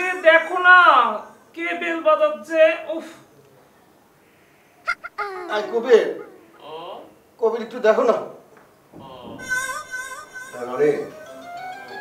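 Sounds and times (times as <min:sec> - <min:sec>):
pitched vocal sound: 0:04.9 - 0:06.8.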